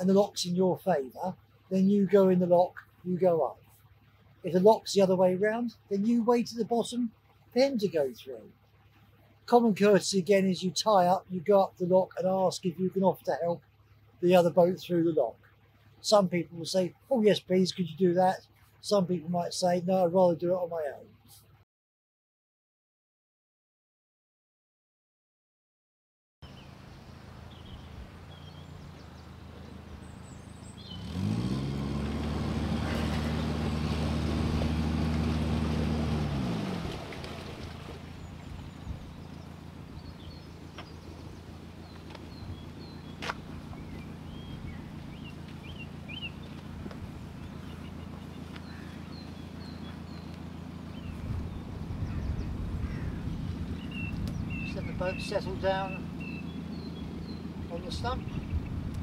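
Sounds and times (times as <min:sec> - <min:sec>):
diesel boat engine idling: 0:26.5 - 0:59.0.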